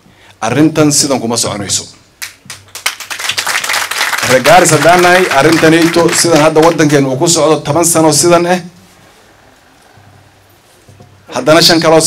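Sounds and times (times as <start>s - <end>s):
audience clapping: 2.2s - 7.2s.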